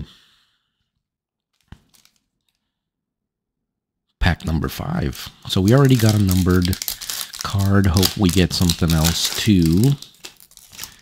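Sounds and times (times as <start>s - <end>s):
foil pack crinkling: 1.5s - 2.6s, 5.5s - 11.0s.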